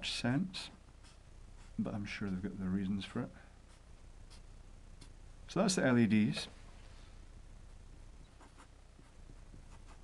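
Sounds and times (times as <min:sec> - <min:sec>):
marker pen strokes on paper: 0:01.0 - 0:02.5, 0:08.4 - 0:10.0.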